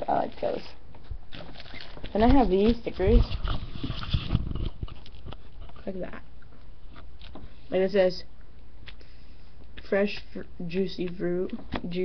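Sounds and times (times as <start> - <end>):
sticker sheet rustling: 1.4 - 6.0.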